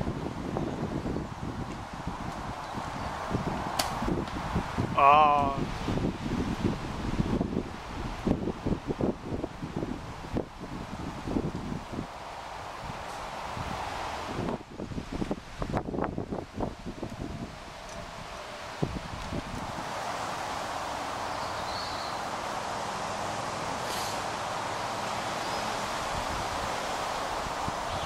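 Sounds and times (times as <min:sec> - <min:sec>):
rustling foliage: 0:00.0 - 0:28.0
wind buffeting microphone: 0:00.0 - 0:28.0.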